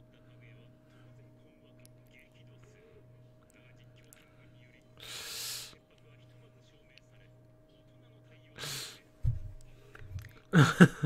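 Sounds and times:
faint dialogue from headphones: 0:00.0 - 0:10.6
low steady hum: 0:00.0 - 0:11.0
stifled laugh through nose: 0:10.5 - 0:11.0.

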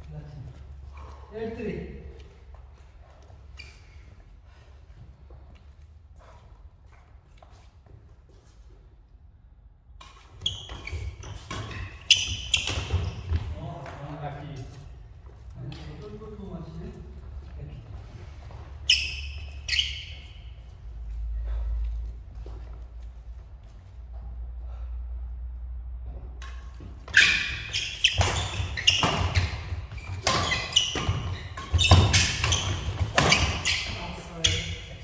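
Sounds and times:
shoe squeaks on floor: 0:03.1 - 0:04.3, 0:10.1 - 0:13.6, 0:18.1 - 0:20.8, 0:27.0 - 0:35.0
echoing footfalls: 0:10.4 - 0:24.5
racket hitting shuttlecock: 0:26.4 - 0:35.0.

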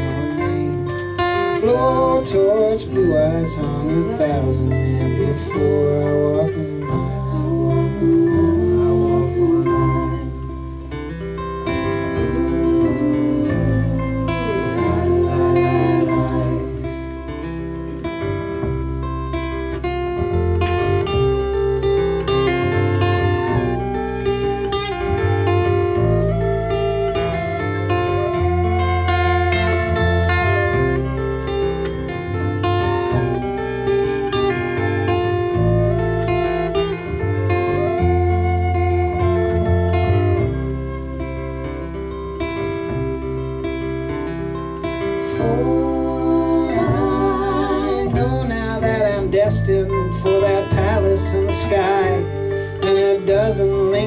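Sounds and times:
gliding lead melody: 0:00.0 - 0:54.0
plucked double bass: 0:00.0 - 0:54.0
strummed acoustic guitar: 0:00.0 - 0:54.0.

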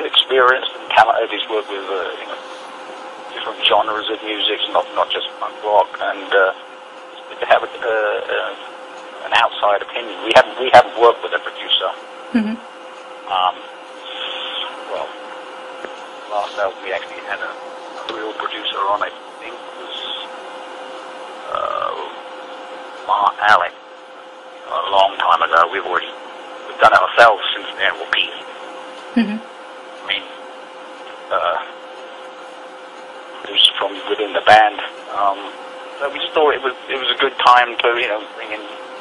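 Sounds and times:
man talking: 0:00.0 - 0:02.4, 0:03.3 - 0:06.6, 0:07.2 - 0:12.0, 0:13.3 - 0:15.2, 0:16.3 - 0:20.3, 0:21.4 - 0:22.2, 0:23.1 - 0:23.8, 0:24.6 - 0:28.5, 0:30.0 - 0:30.4, 0:31.3 - 0:31.8, 0:33.4 - 0:38.8
low hum and hiss: 0:00.0 - 0:39.0
person talking indistinctly: 0:13.3 - 0:15.2, 0:24.6 - 0:26.1.

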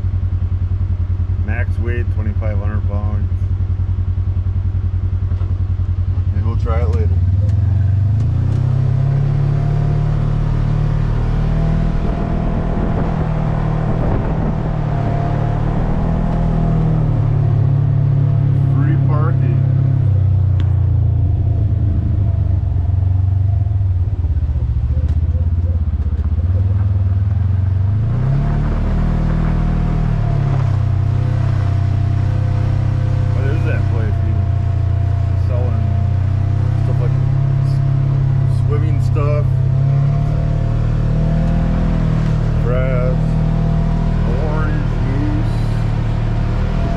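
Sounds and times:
vehicle engine running: 0:00.0 - 0:46.9.

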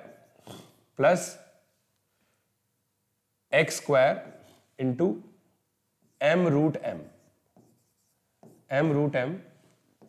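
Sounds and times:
stylus strokes on whiteboard: 0:00.0 - 0:00.8, 0:03.7 - 0:04.8, 0:06.0 - 0:10.0
man talking: 0:01.0 - 0:01.5, 0:03.5 - 0:05.3, 0:06.2 - 0:07.2, 0:08.7 - 0:09.5.

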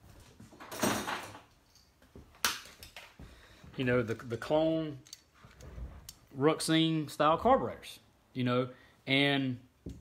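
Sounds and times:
man speaking: 0:03.8 - 0:05.1, 0:06.3 - 0:09.7.

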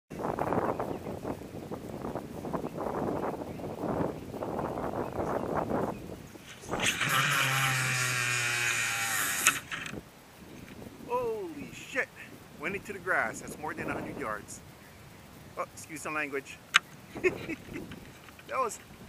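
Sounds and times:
wind buffeting microphone: 0:00.1 - 0:15.6, 0:16.7 - 0:19.0
fishing reel spool buzzing: 0:05.7 - 0:10.9
reel spool stopping click: 0:06.7 - 0:10.0.

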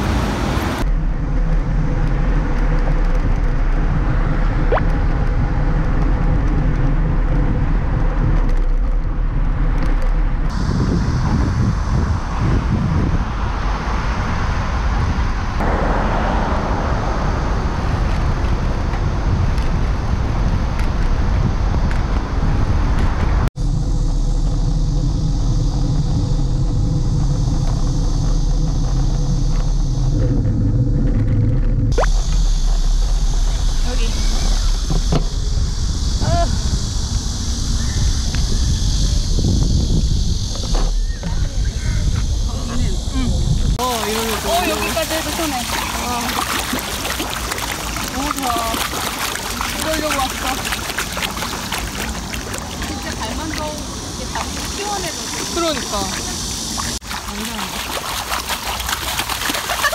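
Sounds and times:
road traffic: 0:00.0 - 0:59.9
wind noise on camera: 0:00.0 - 0:59.9.

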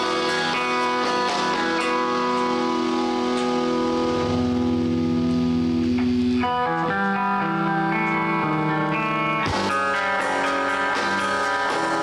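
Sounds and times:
electric bass: 0:00.0 - 0:12.0
electric guitar ringing: 0:00.0 - 0:12.0.

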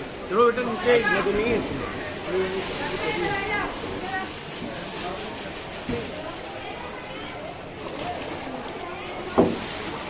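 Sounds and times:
people talking nearby: 0:00.0 - 0:10.0
steady background noise: 0:00.0 - 0:10.0.

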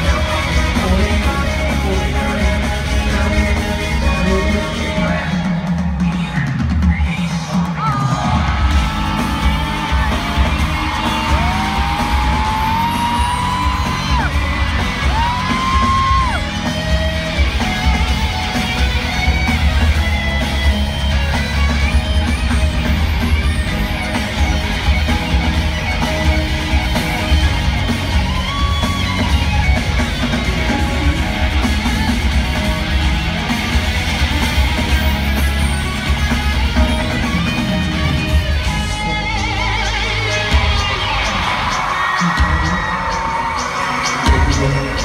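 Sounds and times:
fans screaming and whooping: 0:00.0 - 0:45.0
live concert music with bass beat: 0:00.0 - 0:45.0.

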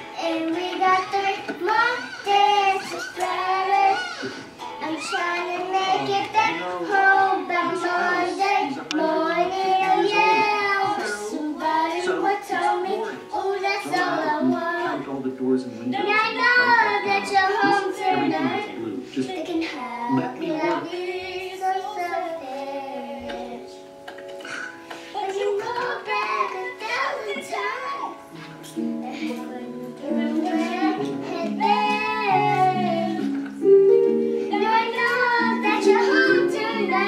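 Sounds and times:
girl singing wordlessly: 0:00.0 - 0:04.2, 0:04.8 - 0:15.1, 0:15.9 - 0:24.0, 0:25.1 - 0:37.0
background music: 0:00.0 - 0:37.0.

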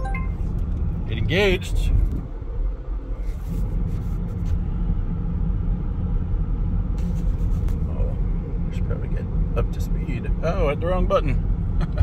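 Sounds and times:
road and drivetrain rumble in car: 0:00.0 - 0:12.0.

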